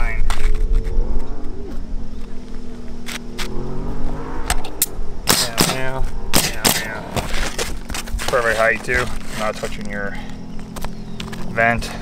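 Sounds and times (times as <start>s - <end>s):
low engine hum: 0.0s - 12.0s
sharp clicks on shingles: 4.5s - 12.0s.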